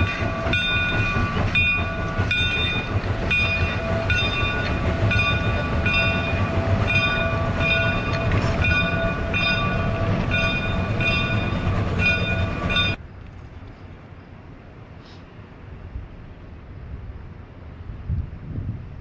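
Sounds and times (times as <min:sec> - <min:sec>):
steam locomotive bell ringing: 0:00.0 - 0:13.0
rumble of locomotive and train: 0:00.0 - 0:19.0.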